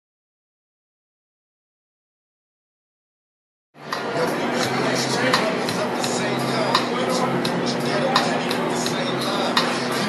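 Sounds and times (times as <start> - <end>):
city street noise: 3.8 - 10.0.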